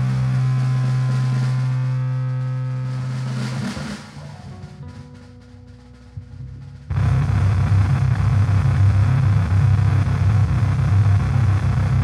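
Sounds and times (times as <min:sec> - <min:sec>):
electric guitar drone: 0:00.0 - 0:12.0.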